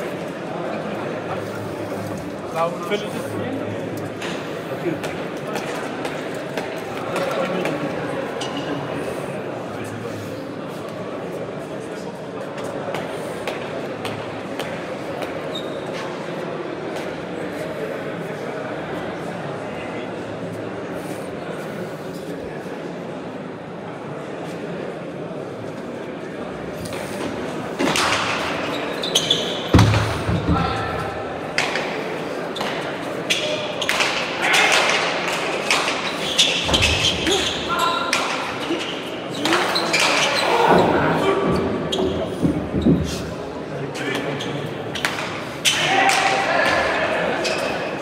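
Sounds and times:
crowd murmuring in a hall: 0.0s - 48.0s.

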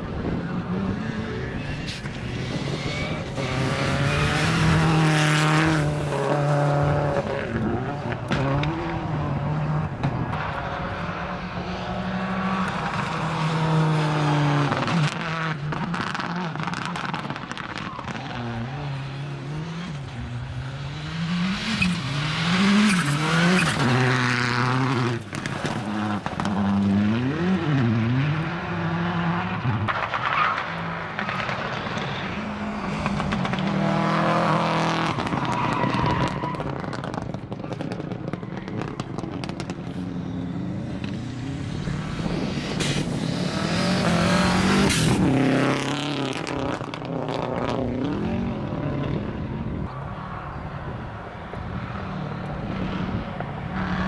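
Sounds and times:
rally cars racing past: 0.0s - 54.0s
engines revving through gear changes: 2.5s - 10.0s, 38.8s - 49.2s.

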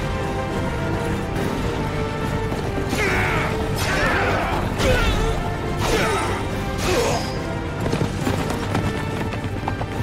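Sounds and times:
dramatic background music: 0.0s - 10.0s
horses galloping: 0.5s - 3.6s, 7.4s - 10.0s.

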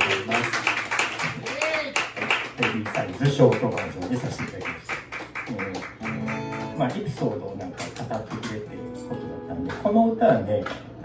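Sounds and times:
audience clapping: 0.0s - 8.8s
voices among claps: 0.0s - 8.8s.

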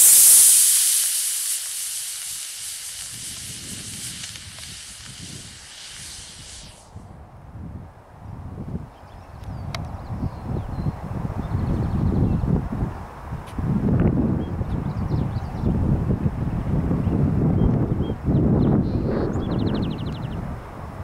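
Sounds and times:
rocket motor hissing: 0.0s - 7.0s
wind rustle: 0.0s - 21.0s.

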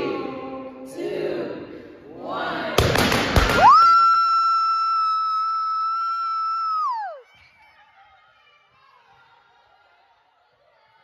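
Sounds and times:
long high-pitched scream: 3.6s - 7.2s.

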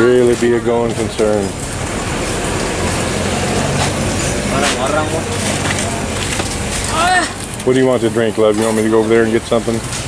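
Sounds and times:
outdoor street noise: 0.0s - 10.0s
voices talking: 0.0s - 10.0s.

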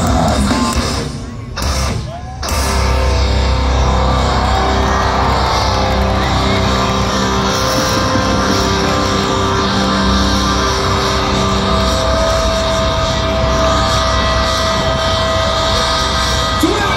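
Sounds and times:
metal band playing live: 0.0s - 16.9s.

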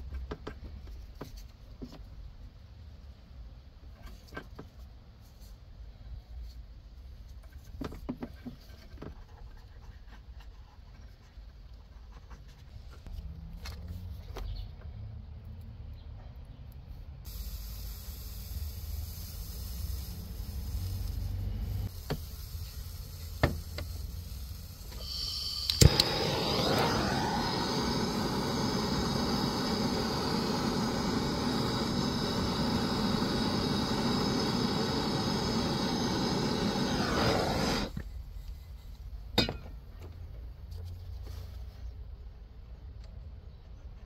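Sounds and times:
gas torch hissing: 17.2s - 38.0s
torch igniter click: 24.9s - 38.0s.

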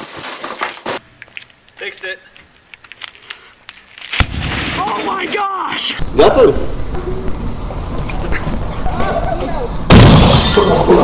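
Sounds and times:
picture tube breaking bang: 9.9s - 10.8s.

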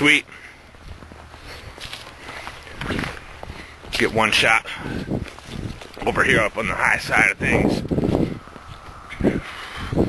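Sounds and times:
footsteps on snow: 0.0s - 10.0s.

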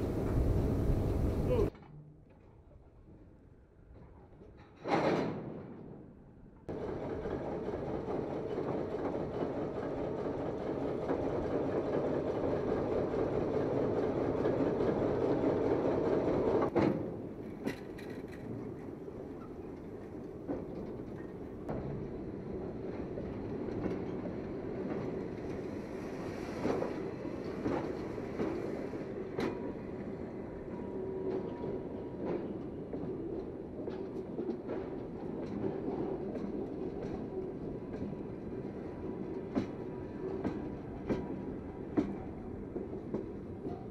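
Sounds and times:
diesel locomotive rumble: 0.0s - 1.7s
railcar wheels rolling on rails: 0.0s - 1.7s, 3.5s - 43.9s.

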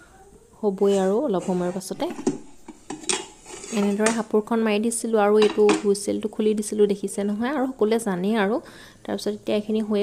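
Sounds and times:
pot lid clinking and scraping: 1.4s - 4.3s, 5.4s - 5.9s.

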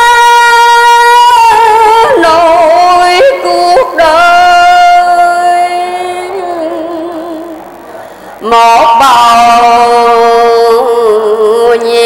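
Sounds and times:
woman chanting religious verse: 0.0s - 7.6s, 8.4s - 12.0s.

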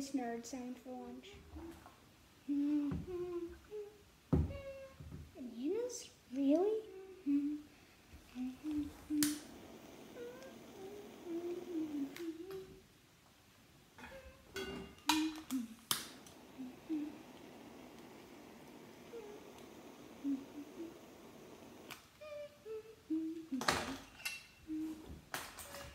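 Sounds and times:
person humming: 1.3s - 5.2s, 6.6s - 12.9s, 14.0s - 25.9s.

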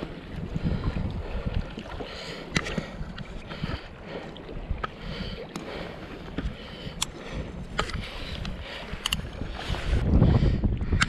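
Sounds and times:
water moving: 0.0s - 11.0s
wind buffeting microphone: 0.0s - 11.0s.

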